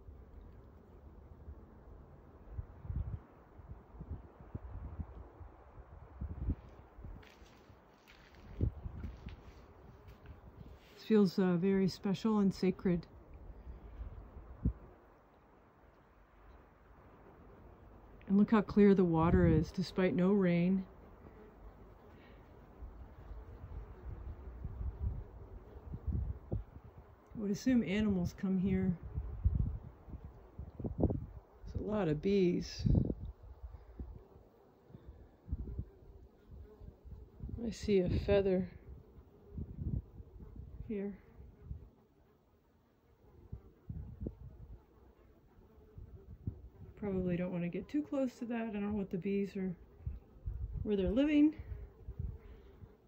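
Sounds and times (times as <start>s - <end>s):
wind buffeting microphone: 2.4s - 10.8s, 13.4s - 14.9s, 19.1s - 19.8s, 22.8s - 34.2s, 35.0s - 41.9s, 43.4s - 44.8s, 45.9s - 47.4s, 50.0s - 53.0s.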